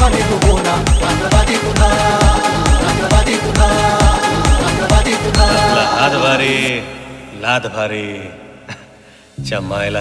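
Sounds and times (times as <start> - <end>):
background music without beat: 0.0 - 7.4
man chanting: 5.0 - 8.4.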